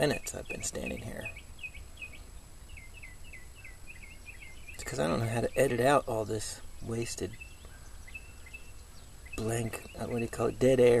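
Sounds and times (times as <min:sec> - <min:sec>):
bird chirping: 0:00.0 - 0:11.0
low steady hum: 0:00.0 - 0:11.0.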